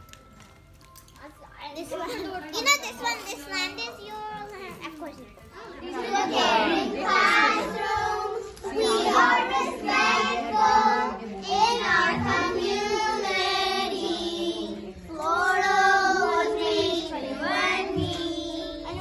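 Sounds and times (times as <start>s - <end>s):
children singing: 5.6s - 19.0s.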